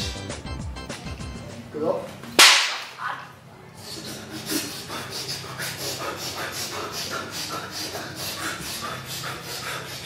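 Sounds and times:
hand slapping a back: 0:02.4 - 0:03.0.

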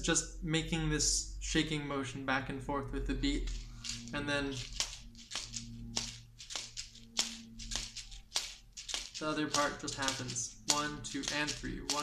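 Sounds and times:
shaken seed gourds rattling: 0:03.4 - 0:12.0
gourds clicking together: 0:04.6 - 0:12.0.

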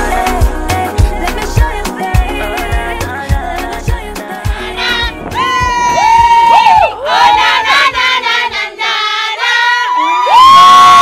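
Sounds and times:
song beat: 0:00.0 - 0:07.1
women cheering and shrieking: 0:05.0 - 0:08.0, 0:09.6 - 0:11.0
loud whoop: 0:05.4 - 0:07.7, 0:09.7 - 0:11.0.

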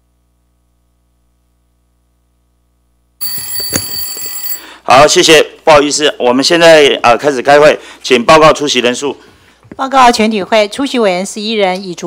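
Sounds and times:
bell ringing: 0:03.2 - 0:04.8.

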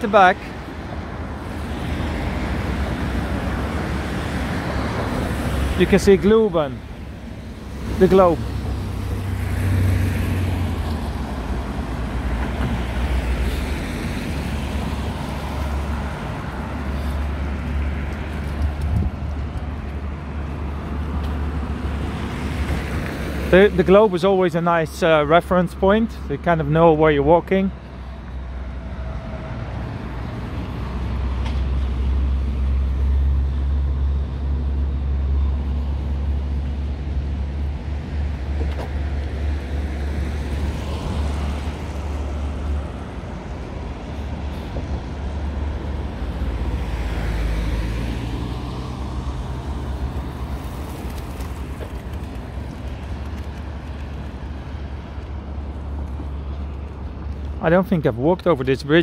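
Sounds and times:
cars passing on wet road: 0:00.0 - 0:59.0
low traffic rumble: 0:00.0 - 0:59.0.

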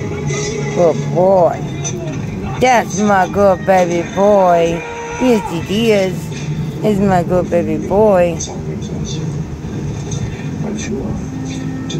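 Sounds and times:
low mechanical hum: 0:00.0 - 0:11.9.

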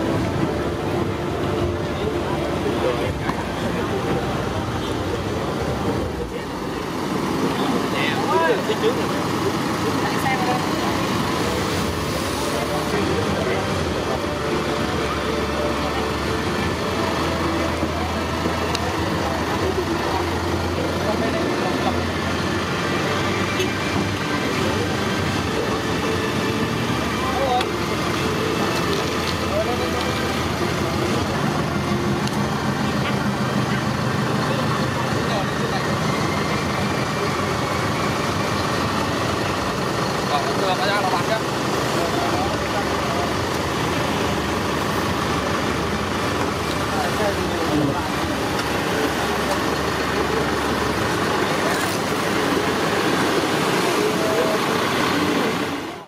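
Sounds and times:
vehicle engines humming: 0:00.0 - 0:56.0.

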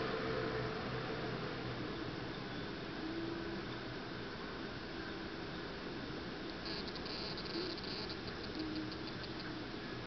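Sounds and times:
steady hiss: 0:00.0 - 0:10.0
insect chirping: 0:06.5 - 0:09.6.

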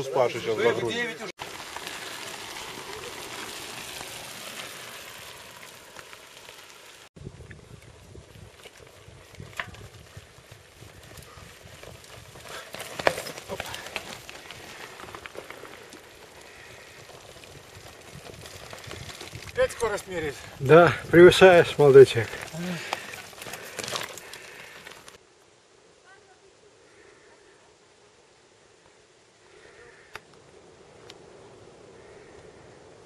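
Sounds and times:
tyres crunching gravel: 0:00.0 - 0:07.2, 0:07.8 - 0:25.2
bike tyres rushing: 0:00.0 - 0:25.2.

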